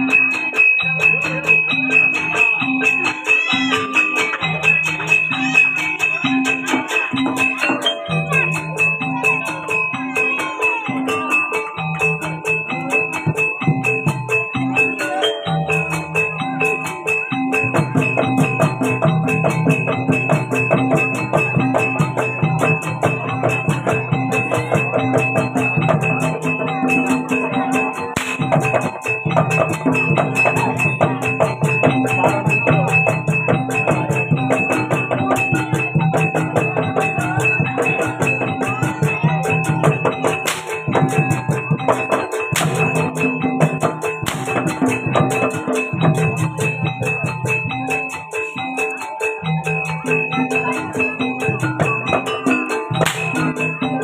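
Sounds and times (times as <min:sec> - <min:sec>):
gamelan ensemble playing: 0:00.0 - 0:54.0
hand drums: 0:00.0 - 0:54.0
rapid tuned metal percussion: 0:00.0 - 0:54.0.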